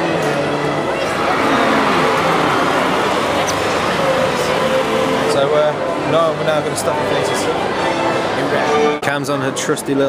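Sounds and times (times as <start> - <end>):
city street traffic noise: 0.0 - 8.8.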